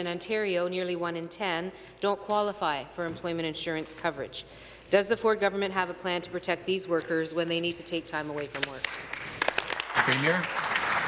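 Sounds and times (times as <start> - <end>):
people clapping: 8.6 - 11.0.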